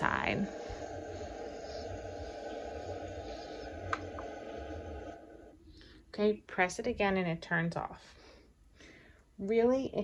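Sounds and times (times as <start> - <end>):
pulsing low rumble: 0.0 - 7.2
white noise hiss: 0.0 - 8.8.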